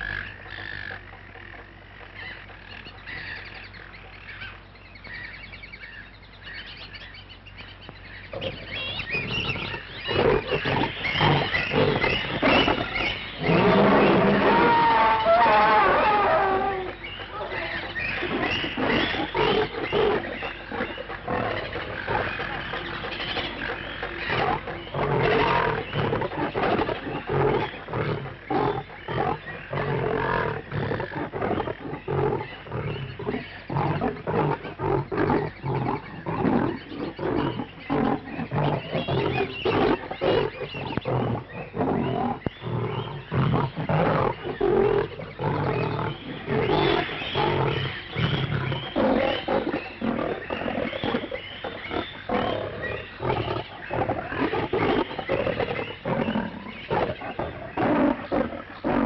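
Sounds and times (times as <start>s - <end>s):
animals roaring: 8.3s - 59.0s.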